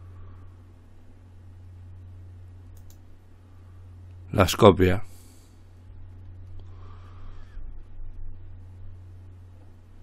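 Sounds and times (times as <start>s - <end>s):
steady low hum: 0.0s - 10.0s
computer mouse clicking: 2.7s - 3.0s.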